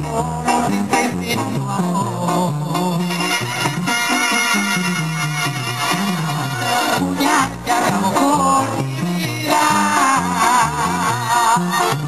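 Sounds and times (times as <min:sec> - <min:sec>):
tuba bass line: 0:00.0 - 0:12.0
brass band melody: 0:02.9 - 0:08.0.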